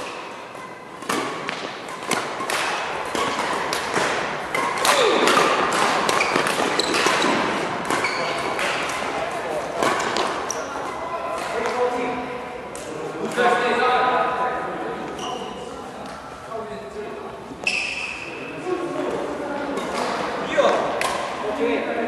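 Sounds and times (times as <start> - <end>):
rackets hitting shuttlecock: 1.0 - 10.7, 19.7 - 21.4.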